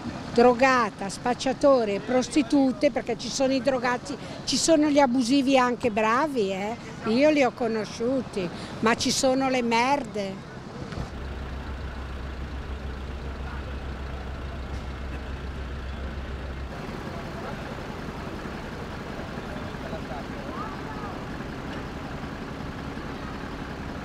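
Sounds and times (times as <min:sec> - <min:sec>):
diesel engine idling: 0:00.0 - 0:24.0
street noise: 0:00.0 - 0:24.0
faint voices: 0:13.1 - 0:24.0.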